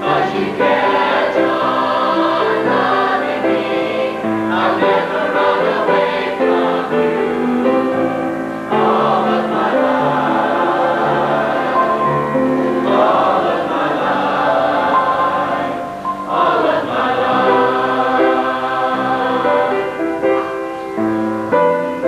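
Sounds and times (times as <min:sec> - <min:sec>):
choir singing: 0:00.0 - 0:22.0.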